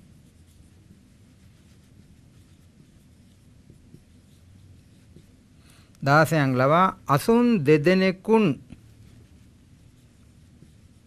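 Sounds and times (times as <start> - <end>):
marker pen scratching on whiteboard: 0.0 - 5.6, 8.6 - 11.0.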